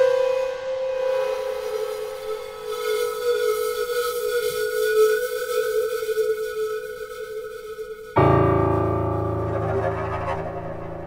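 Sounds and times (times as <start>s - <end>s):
long held note: 8.2s - 11.0s
sudden sting: 8.2s - 11.0s.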